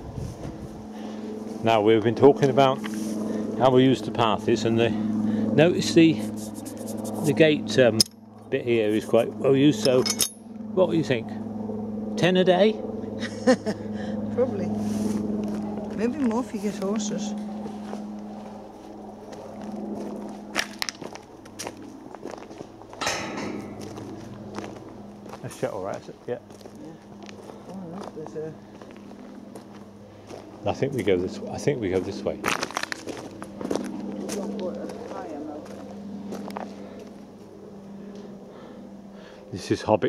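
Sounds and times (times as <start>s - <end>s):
low steady hum: 0.0s - 40.0s
footsteps crunching on gravel: 14.8s - 37.3s.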